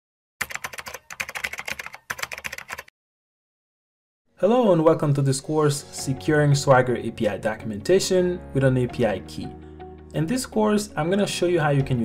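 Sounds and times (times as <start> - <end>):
computer keyboard typing: 0.4 - 2.9.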